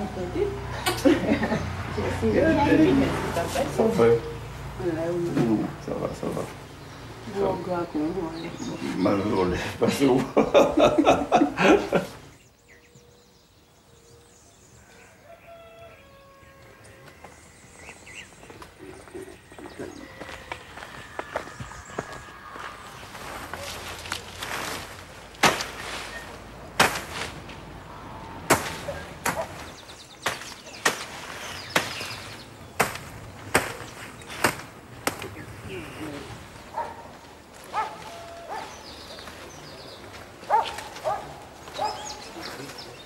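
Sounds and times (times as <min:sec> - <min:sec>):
machete chopping weeds: 0:24.1 - 0:27.6, 0:28.4 - 0:35.4.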